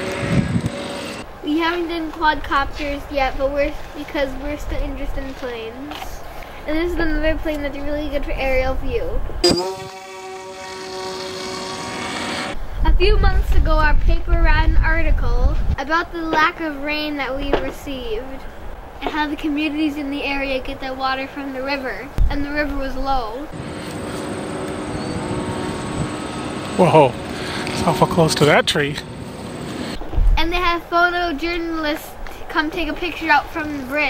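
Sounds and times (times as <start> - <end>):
model airplane motor whining: 0.0 - 1.2, 9.4 - 12.6
wind noise on microphone: 0.0 - 1.6, 2.2 - 10.0, 12.5 - 19.0, 22.1 - 23.8, 29.7 - 34.0.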